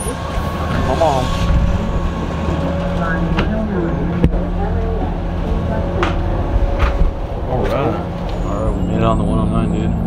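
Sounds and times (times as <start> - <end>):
bus engine idling: 0.0 - 10.0.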